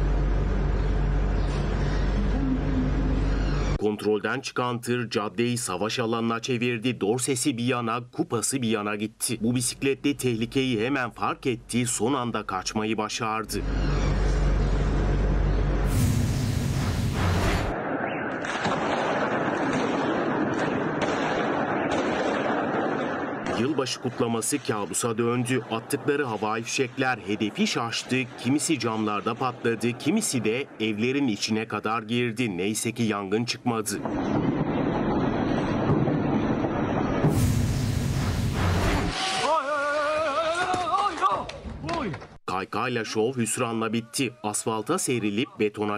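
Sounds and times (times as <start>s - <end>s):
loud hissing rush: 15.9s - 17.7s, 37.2s - 39.3s
fireworks crackling and banging: 15.9s - 31.1s, 33.9s - 39.7s.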